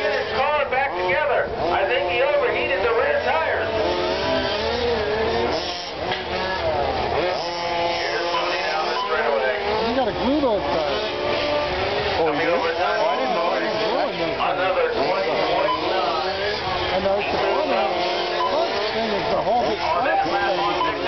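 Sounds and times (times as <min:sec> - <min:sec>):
radio-controlled cars whining: 0:00.0 - 0:21.0.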